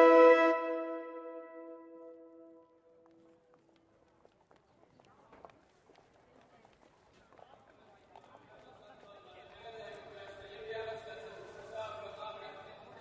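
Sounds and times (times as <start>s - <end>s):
held music tone: 0.0s - 2.6s.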